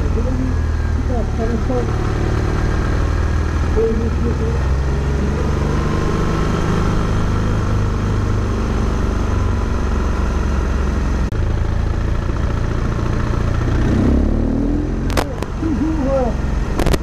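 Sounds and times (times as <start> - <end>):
low engine drone: 0.0 - 17.0
wind and road noise: 0.0 - 17.0.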